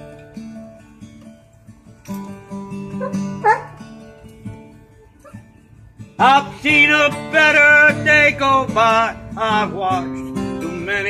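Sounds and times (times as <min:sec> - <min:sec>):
fingerstyle acoustic guitar blues: 0:00.0 - 0:11.0
dog whining: 0:03.0 - 0:03.8, 0:04.9 - 0:05.6.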